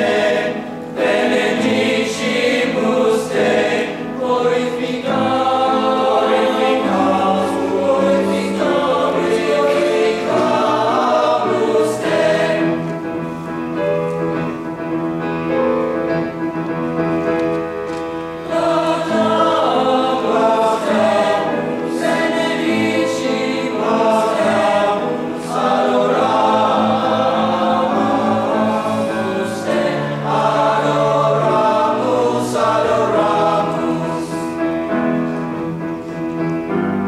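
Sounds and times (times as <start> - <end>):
men's choir singing: 0.0 - 13.2, 18.4 - 35.3
grand piano accompaniment: 0.0 - 37.0.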